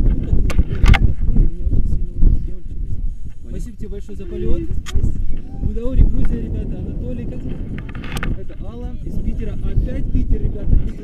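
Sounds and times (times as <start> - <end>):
wind buffeting microphone: 0.0 - 11.0
voices talking: 0.2 - 11.0.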